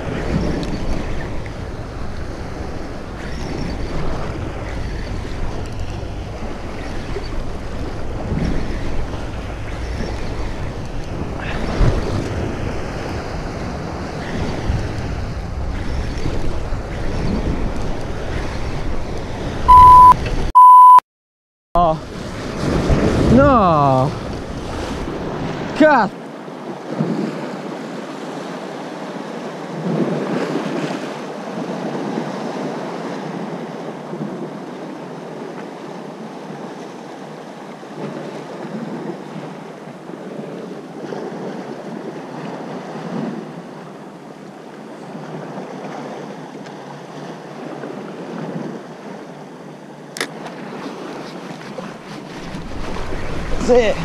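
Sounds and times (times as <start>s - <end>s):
wind blowing across microphone: 0.0s - 20.5s, 22.0s - 25.9s
sea waves rushing: 0.0s - 21.0s, 21.8s - 54.0s.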